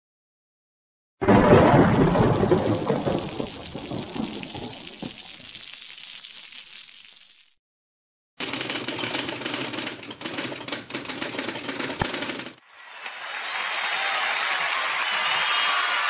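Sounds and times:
rapid clatter of clicks: 0:08.4 - 0:12.6.

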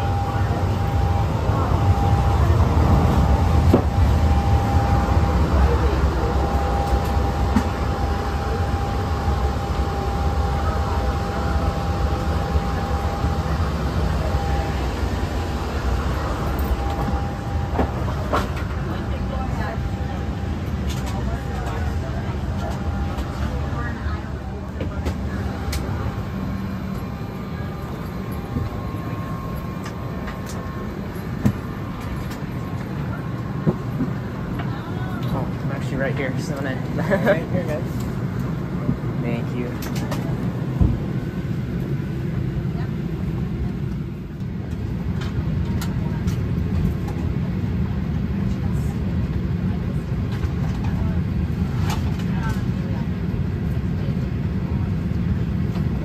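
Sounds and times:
thin steady whine: 0:00.0 - 0:56.0.

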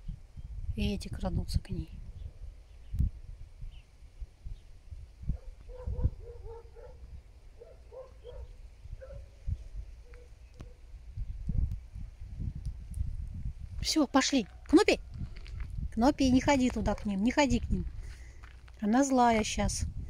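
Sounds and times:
low rumble on microphone: 0:00.0 - 0:14.0, 0:14.6 - 0:20.0.

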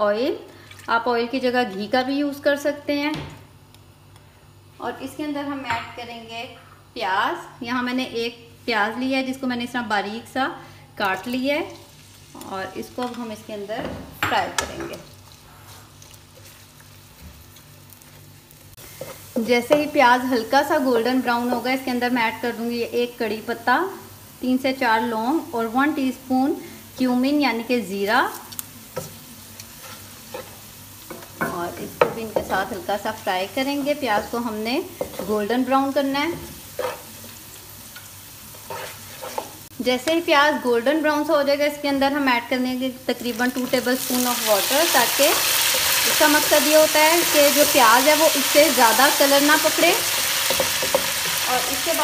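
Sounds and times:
onions sizzling in oil: 0:07.8 - 0:52.0
wooden spatula stirring: 0:33.7 - 0:35.6, 0:36.4 - 0:37.4, 0:38.5 - 0:39.7.

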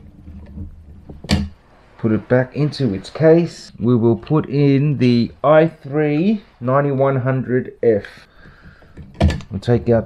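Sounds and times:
handling noise: 0:00.0 - 0:03.6.

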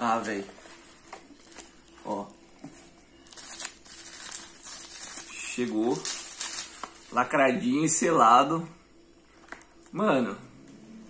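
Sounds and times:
bubble wrap crinkling: 0:00.0 - 0:07.5.

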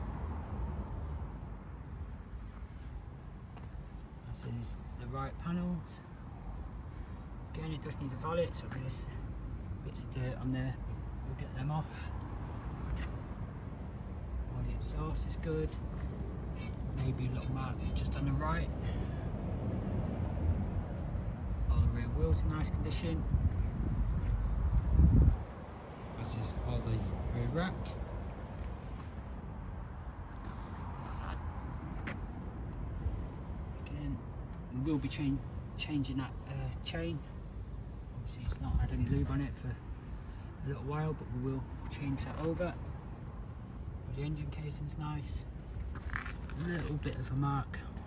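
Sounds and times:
wind buffeting microphone: 0:21.8 - 0:25.8.

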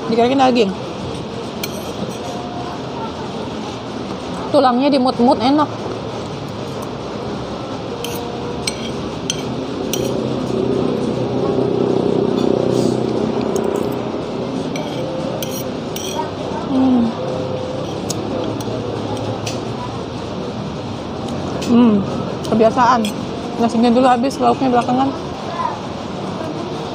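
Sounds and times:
murmur of voices: 0:00.0 - 0:26.9.

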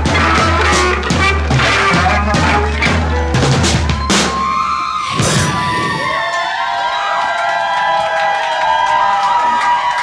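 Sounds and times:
drum kit crash: 0:00.0 - 0:04.6
crowd cheering and whooping: 0:01.6 - 0:10.0.

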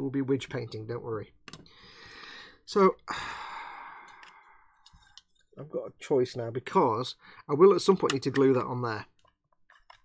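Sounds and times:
person sighing: 0:01.8 - 0:04.6.

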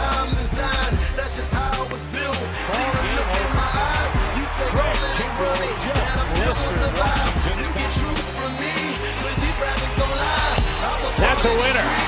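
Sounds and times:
music with steady beat: 0:00.0 - 0:12.0
person singing: 0:00.0 - 0:12.0.

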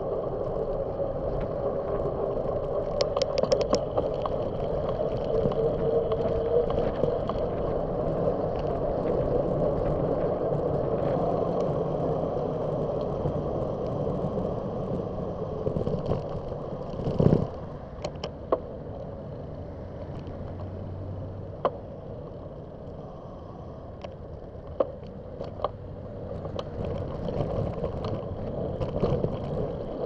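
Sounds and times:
passing traffic: 0:00.0 - 0:30.0
vehicle low hum: 0:00.0 - 0:30.0
wind and road noise from bicycle: 0:00.0 - 0:30.0
bike jolting over cracked pavement: 0:13.1 - 0:18.2, 0:25.4 - 0:30.0.

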